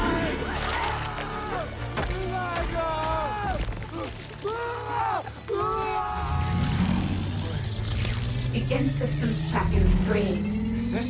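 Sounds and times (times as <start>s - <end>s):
film score music: 0.0s - 11.0s
young man screaming: 4.4s - 6.7s
low rumbling drone: 6.2s - 11.0s.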